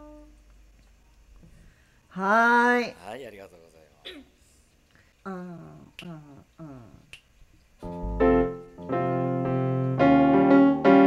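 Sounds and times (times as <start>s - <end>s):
person calling out: 5.3s - 7.1s
finger snaps: 5.9s - 6.3s, 7.0s - 7.4s.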